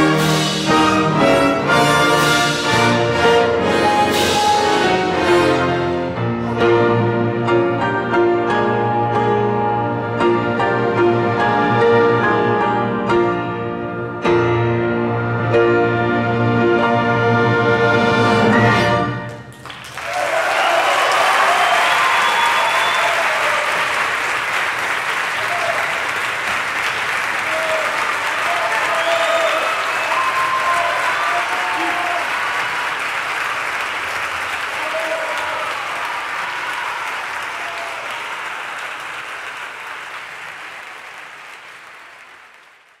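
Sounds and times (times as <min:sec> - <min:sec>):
audience applauding loudly: 0:19.5 - 0:43.0
people shouting and cheering: 0:20.0 - 0:24.0, 0:25.4 - 0:26.1, 0:27.4 - 0:32.7, 0:34.6 - 0:38.5.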